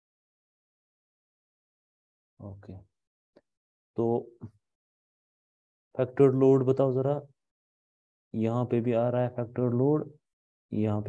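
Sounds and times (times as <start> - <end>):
man speaking: 4.0 - 4.3, 10.8 - 11.0.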